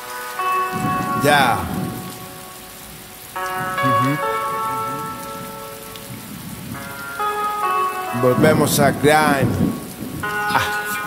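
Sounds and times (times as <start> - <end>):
steady hiss: 0.0 - 11.0
person humming: 10.4 - 11.0.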